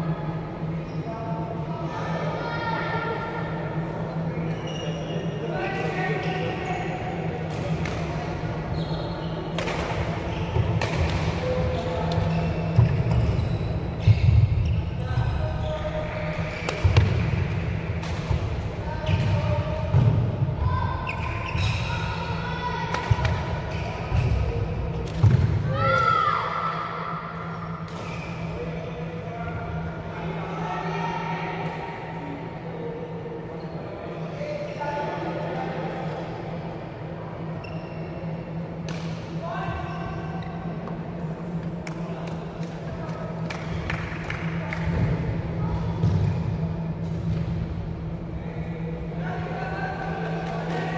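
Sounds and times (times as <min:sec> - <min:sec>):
steady low hum: 0:00.0 - 0:50.9.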